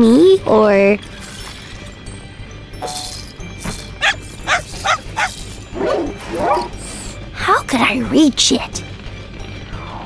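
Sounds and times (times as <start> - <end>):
cartoon dog barking: 4.0 - 6.7.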